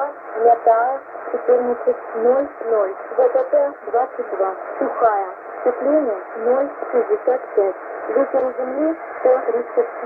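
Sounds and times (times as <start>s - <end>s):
radio voice reading weather report: 0.0s - 10.0s
static hiss: 0.0s - 10.0s.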